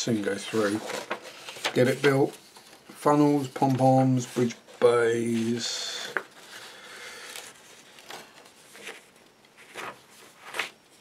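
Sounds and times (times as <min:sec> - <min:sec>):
paper rustling and crinkling: 0:00.2 - 0:10.8.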